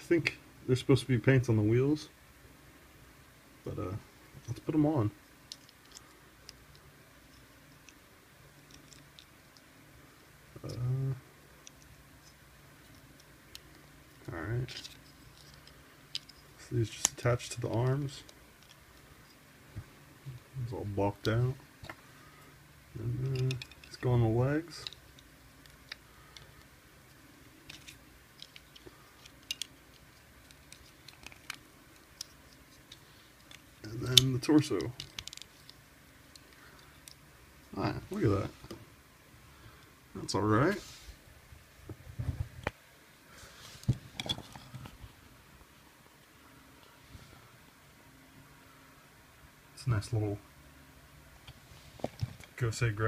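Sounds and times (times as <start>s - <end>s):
plastic toy parts clicking: 23.3s - 24.0s, 27.6s - 33.6s, 34.2s - 37.2s.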